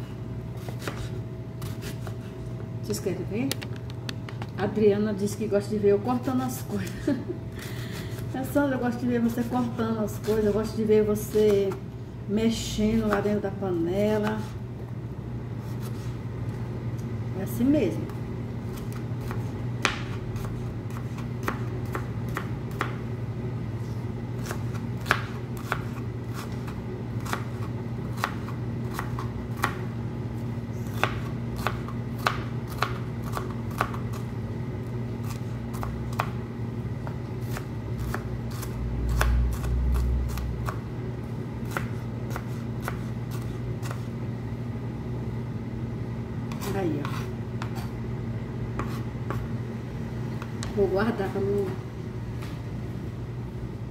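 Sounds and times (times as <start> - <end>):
steady low hum: 0.0 - 53.9.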